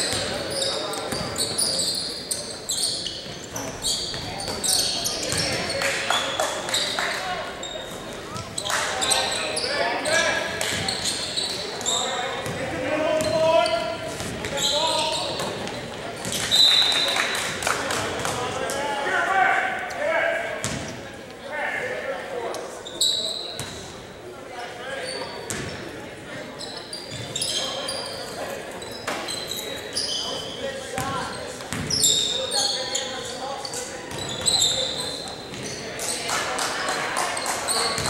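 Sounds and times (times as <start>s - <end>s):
sneaker squeaks: 0.0s - 17.6s, 22.7s - 23.9s, 24.9s - 36.3s, 37.4s - 38.0s.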